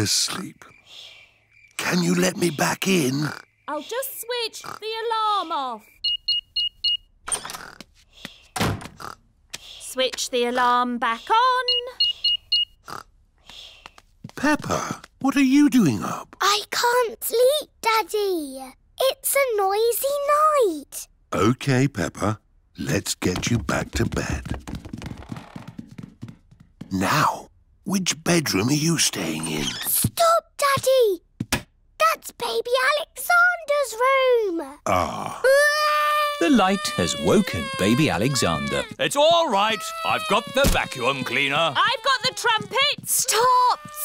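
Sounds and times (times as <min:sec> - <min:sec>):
heavy door thunk: 0:08.6 - 0:09.0
cartoon footsteps on stairs: 0:13.4 - 0:15.6, 0:23.0 - 0:27.4, 0:30.0 - 0:31.7, 0:36.8 - 0:44.0.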